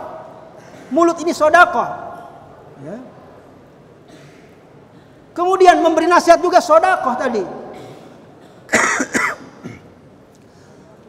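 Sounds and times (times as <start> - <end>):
man coughing: 7.6 - 10.0.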